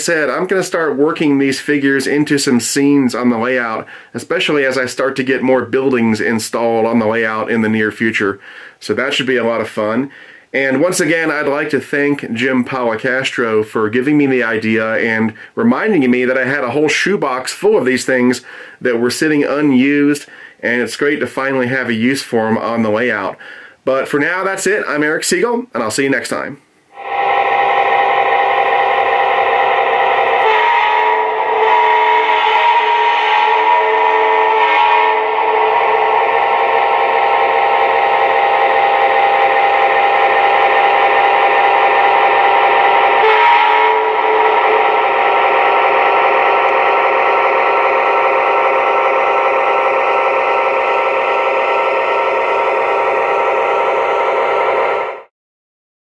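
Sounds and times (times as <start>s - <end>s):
model train drone: 26.9s - 55.3s.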